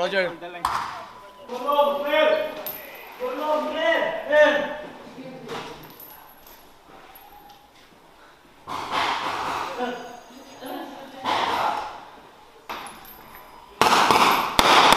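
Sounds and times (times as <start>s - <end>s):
rifle shots: 13.8s - 14.9s.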